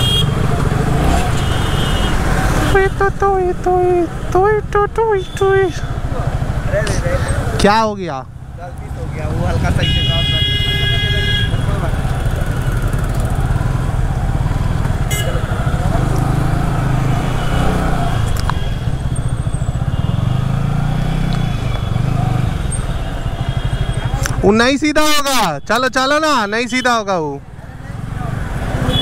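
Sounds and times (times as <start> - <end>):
motorcycle engine running: 0.0 - 7.7, 8.3 - 24.6.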